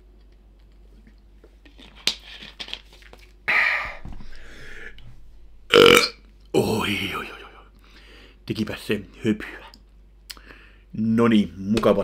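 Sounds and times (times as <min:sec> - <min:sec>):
loud burps: 0:05.7 - 0:07.5.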